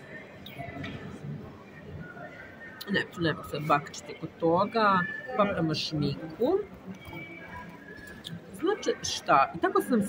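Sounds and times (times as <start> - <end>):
faint music: 0.0 - 10.0
shopping mall murmur: 0.0 - 10.0
woman speaking: 2.8 - 6.7, 8.6 - 10.0.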